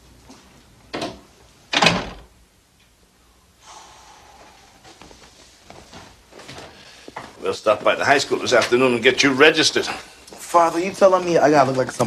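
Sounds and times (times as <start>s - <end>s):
door closing thud: 1.0s - 2.3s.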